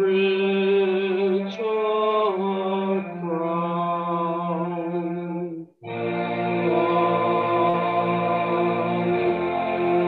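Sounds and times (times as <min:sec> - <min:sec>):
slow hymn music: 0:00.0 - 0:10.0.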